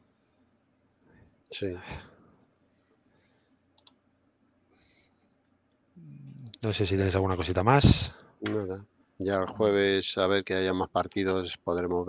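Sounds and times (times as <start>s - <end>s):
faint quick clicks: 3.8s - 4.0s.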